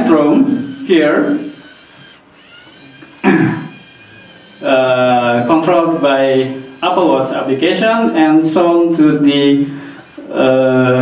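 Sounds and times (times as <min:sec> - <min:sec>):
servo motors whirring: 0:00.0 - 0:11.0.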